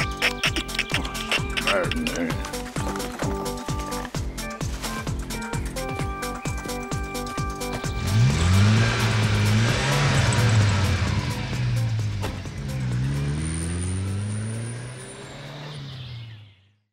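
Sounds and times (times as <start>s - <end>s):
car engine revving: 7.5s - 16.8s.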